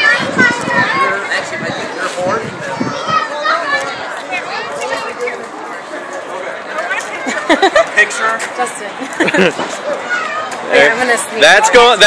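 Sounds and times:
children's voices: 0:00.0 - 0:07.7, 0:09.6 - 0:10.8
crowd chattering and calling out: 0:00.0 - 0:12.0.

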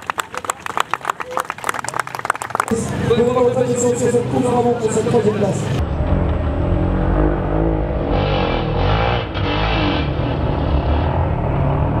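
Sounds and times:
motorcycle engine revving: 0:02.7 - 0:12.0.

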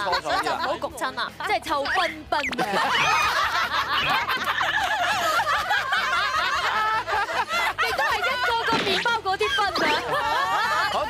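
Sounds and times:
women laughing: 0:01.9 - 0:11.0.

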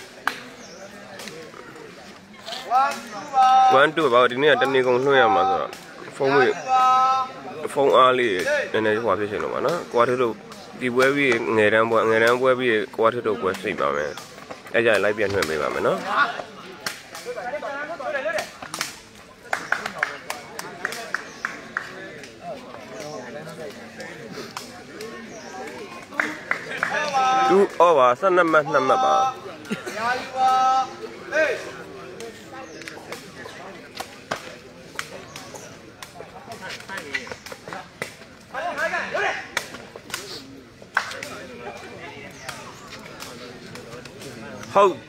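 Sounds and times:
onlookers' voices: 0:00.0 - 0:45.0
people shouting: 0:02.5 - 0:05.6, 0:06.2 - 0:07.4, 0:26.9 - 0:27.8, 0:28.6 - 0:29.4, 0:30.0 - 0:31.7.

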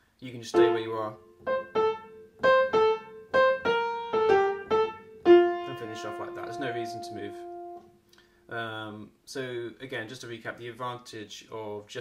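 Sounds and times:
piano notes: 0:00.5 - 0:08.0.

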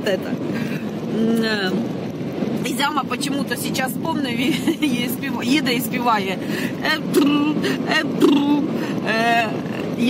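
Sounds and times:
car road and engine noise: 0:00.0 - 0:10.0
woman humming: 0:07.0 - 0:09.5.

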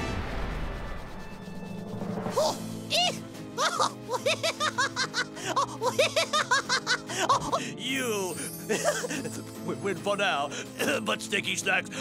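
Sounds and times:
background music: 0:00.0 - 0:12.0
cartoon villain cackling laugh: 0:03.6 - 0:07.6.

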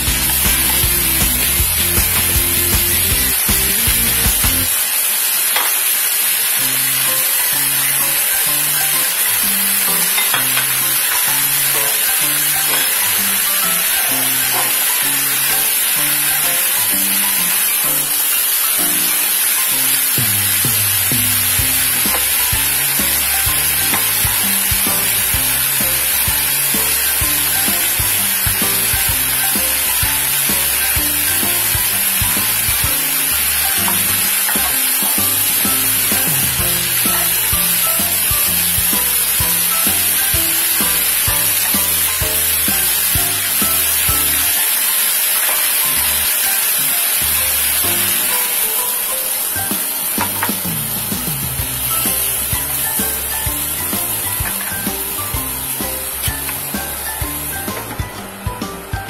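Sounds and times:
food sizzling in a pan: 0:00.0 - 0:58.0.

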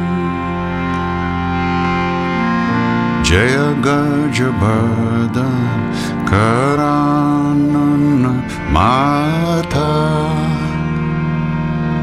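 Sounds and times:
harmonium drone: 0:00.0 - 0:12.0
man chanting: 0:03.2 - 0:11.0.

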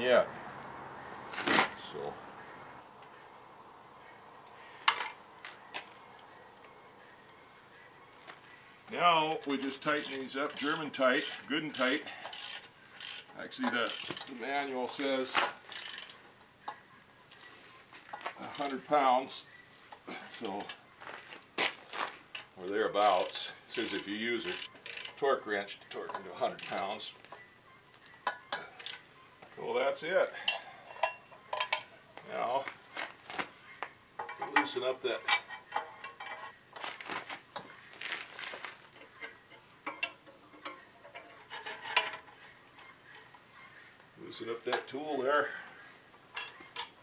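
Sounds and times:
hand tools clinking on metal: 0:09.2 - 0:16.8, 0:18.0 - 0:19.4, 0:20.0 - 0:21.2, 0:22.3 - 0:25.2, 0:25.9 - 0:27.4, 0:28.2 - 0:29.0, 0:30.4 - 0:31.9, 0:34.2 - 0:43.5, 0:46.3 - 0:47.0
ratchet wrench click: 0:10.0 - 0:14.3, 0:15.7 - 0:16.2, 0:23.1 - 0:25.2.

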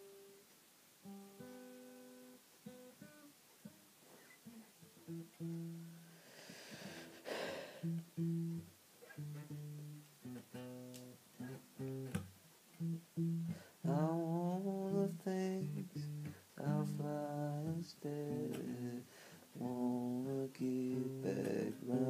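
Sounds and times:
acoustic guitar strumming chords: 0:01.0 - 0:03.8, 0:04.4 - 0:22.0.

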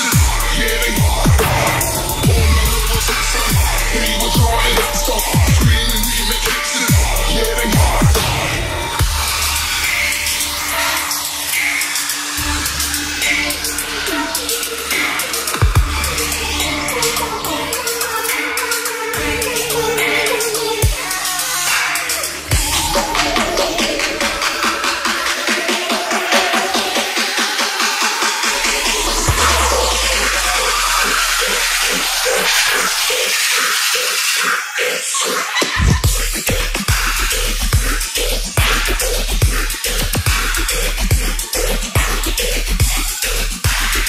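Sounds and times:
deep sub-bass: 0:00.0 - 0:11.2, 0:22.5 - 0:24.6, 0:28.5 - 0:33.1, 0:35.8 - 0:44.0
repeating electronic pulse: 0:00.0 - 0:21.3
dubstep music: 0:00.0 - 0:44.0
hissing noise layer: 0:00.0 - 0:44.0.

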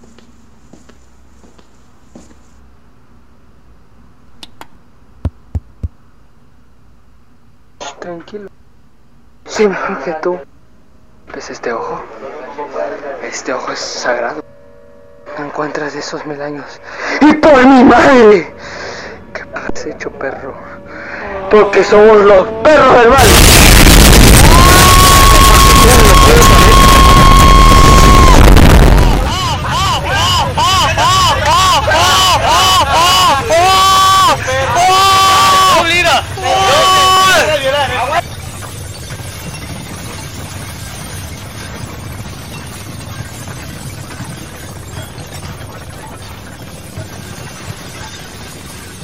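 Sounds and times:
low steady hum: 0:00.0 - 0:49.0
sharp thumps: 0:05.2 - 0:06.0
high-pitched ringing tone: 0:13.4 - 0:29.1, 0:35.3 - 0:49.0
distorted blast noise: 0:22.8 - 0:30.2.

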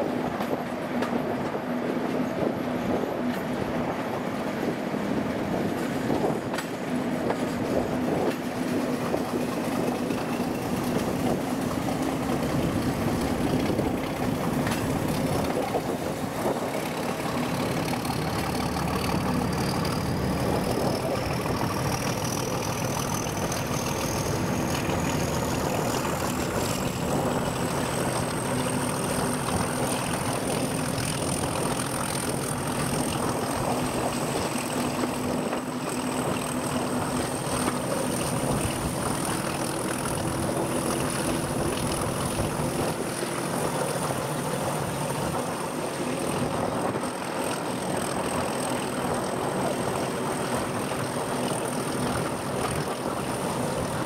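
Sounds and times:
diesel locomotive engine drone: 0:00.0 - 0:54.0
wheel-on-rail noise: 0:00.0 - 0:54.0.

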